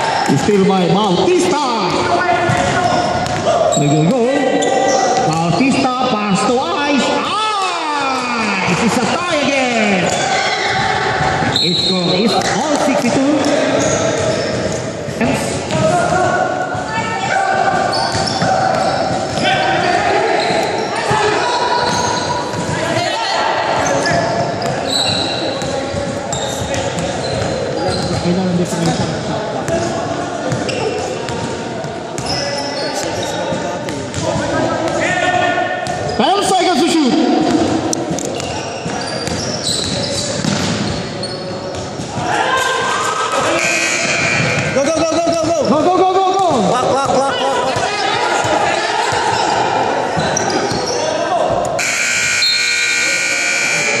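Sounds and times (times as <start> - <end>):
players calling out: 0.0 - 54.0
scoreboard buzzer: 43.6 - 44.5, 51.8 - 54.0.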